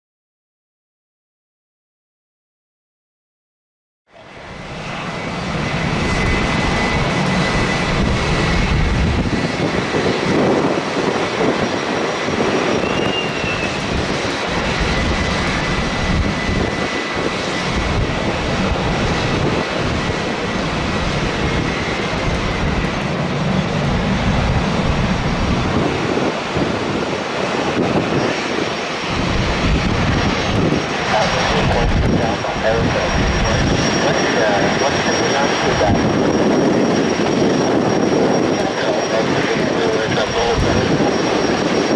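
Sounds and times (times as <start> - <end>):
jet airliner engines whining: 4.1 - 41.9.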